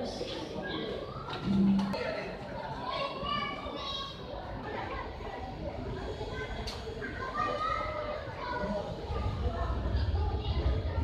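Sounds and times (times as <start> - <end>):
background chatter of people: 0.0 - 11.0
children's voices: 0.0 - 11.0.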